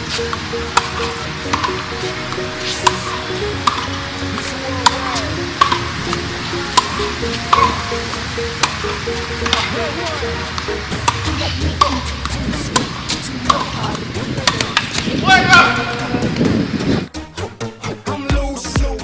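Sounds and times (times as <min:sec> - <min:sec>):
tennis ball hits and bounces: 0:00.0 - 0:16.2
hip-hop track with synth tones: 0:15.1 - 0:19.0.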